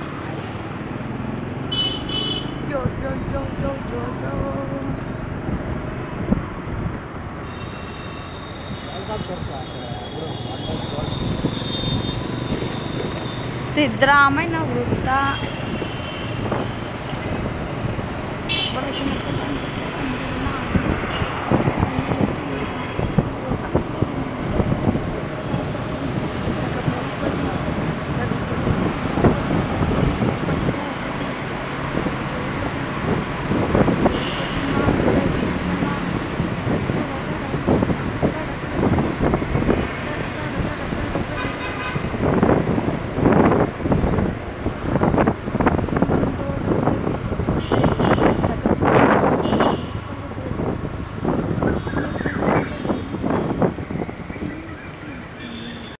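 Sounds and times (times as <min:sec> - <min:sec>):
road traffic: 0:00.0 - 0:55.9
car horn toot: 0:01.7 - 0:02.6
vehicle horn honking: 0:01.7 - 0:02.6, 0:18.5 - 0:19.4, 0:47.6 - 0:48.5, 0:49.4 - 0:50.0
wind on microphone: 0:19.1 - 0:55.4.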